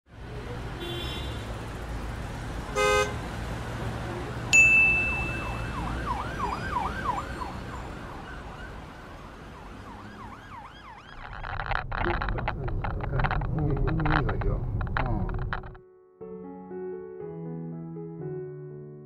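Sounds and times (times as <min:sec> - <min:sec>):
low street rumble: 0:00.1 - 0:15.8
ringing ding: 0:04.5 - 0:05.7
emergency vehicle siren yelping: 0:05.1 - 0:11.3.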